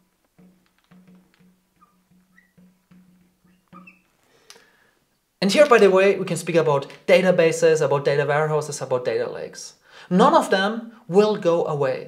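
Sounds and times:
marker squeaking on glass: 0:00.8 - 0:04.2.

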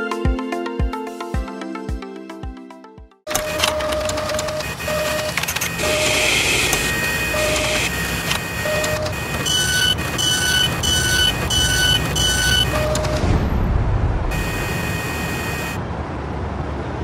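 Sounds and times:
mechanical clicks: 0:03.3 - 0:13.3
machine whirring: 0:03.3 - 0:13.5, 0:14.3 - 0:15.8
short beeps: 0:03.3 - 0:13.5, 0:14.3 - 0:15.8.

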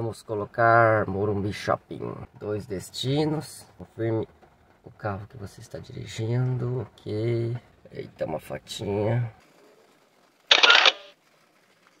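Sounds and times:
phone camera shutter: 0:10.5 - 0:11.1.

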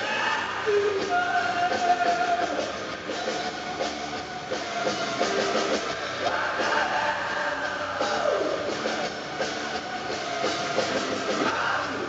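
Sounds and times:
distorted guitar drone: 0:00.0 - 0:12.0
driving drum beat: 0:00.0 - 0:12.0.

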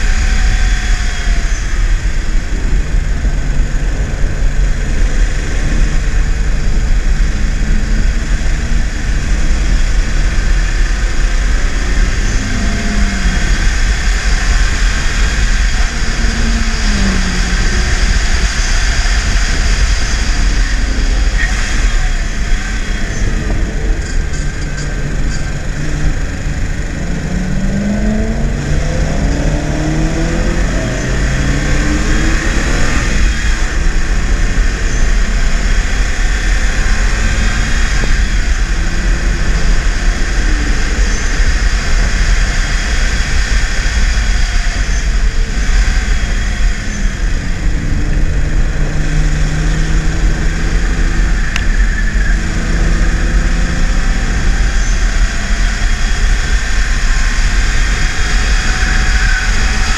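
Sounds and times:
car engine accelerating: 0:00.0 - 0:59.9
road and wind noise: 0:00.0 - 0:59.9.

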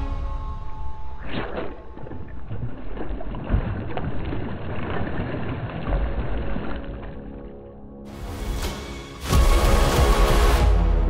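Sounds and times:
water splashing and swirling: 0:00.0 - 0:10.2.

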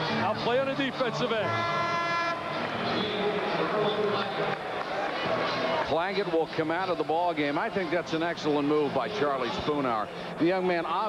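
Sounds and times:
arena crowd noise: 0:00.0 - 0:11.0
arena horn: 0:01.4 - 0:03.2.

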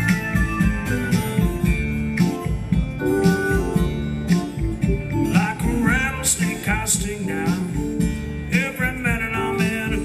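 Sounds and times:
slide guitar playing: 0:00.0 - 0:10.0.

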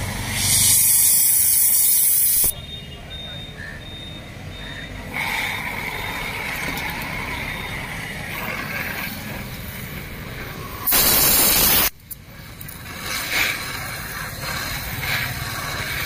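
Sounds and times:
gas hissing from nozzle: 0:00.0 - 0:02.6, 0:05.1 - 0:09.8, 0:10.6 - 0:12.0, 0:12.8 - 0:16.0.

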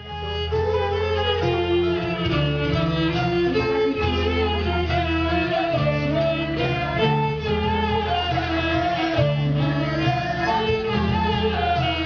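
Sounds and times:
plucked strings: 0:00.0 - 0:12.0
steady bass: 0:00.0 - 0:12.0
sustained violin-like melody: 0:00.0 - 0:12.0.

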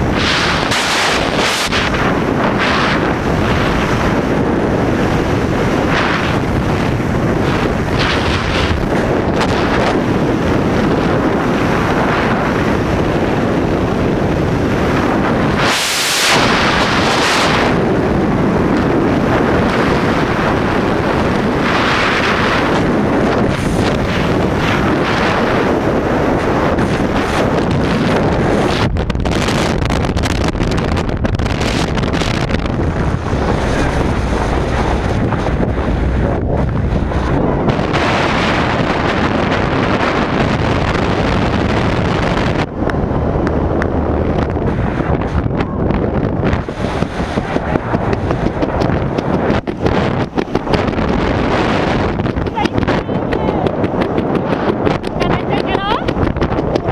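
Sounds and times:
wind rushing over microphone: 0:00.0 - 0:56.9.

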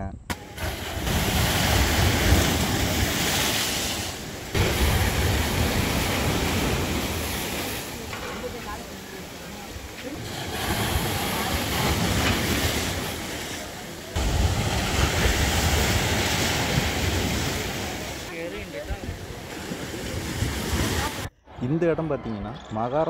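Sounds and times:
sea surf breaking on seawall: 0:00.3 - 0:21.3.

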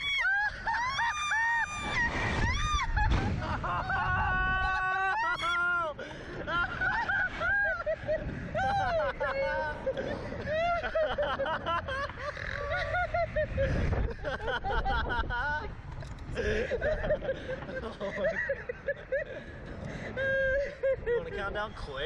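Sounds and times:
people screaming: 0:00.0 - 0:11.2
people laughing: 0:00.0 - 0:22.0
wind noise: 0:00.0 - 0:22.0.

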